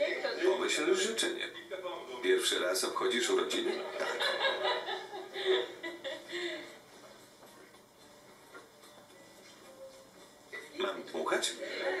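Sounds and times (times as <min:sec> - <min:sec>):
woman laughing through tv speaker: 0:03.9 - 0:06.7.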